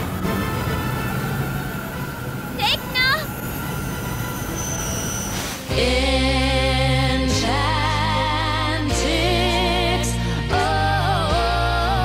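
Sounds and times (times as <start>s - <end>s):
rushing magical texture: 0.0s - 6.0s.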